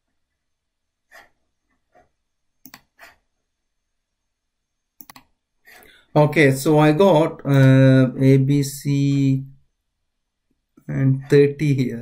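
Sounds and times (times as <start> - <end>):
computer mouse clicks: 2.6 - 3.2, 5.0 - 5.4.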